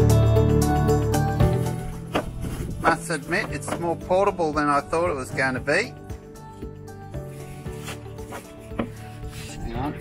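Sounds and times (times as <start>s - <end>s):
background music: 0.0s - 10.0s
sharp handling noises: 2.0s - 4.0s.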